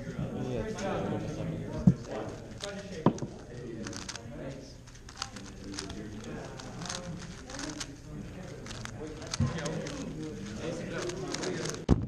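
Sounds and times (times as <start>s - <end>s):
background chatter: 0.0s - 12.0s
puzzle cube plastic clicks: 1.9s - 4.2s, 4.9s - 12.0s.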